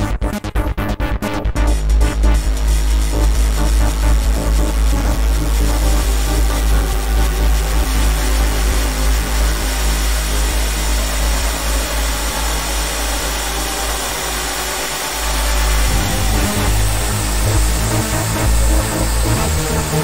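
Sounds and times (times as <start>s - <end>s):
deep bass: 0.0s - 20.0s
hissy synth texture: 0.0s - 20.0s.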